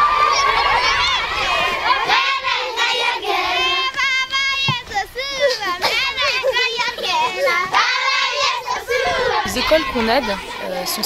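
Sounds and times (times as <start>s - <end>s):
children singing and shouting: 0.0s - 11.0s.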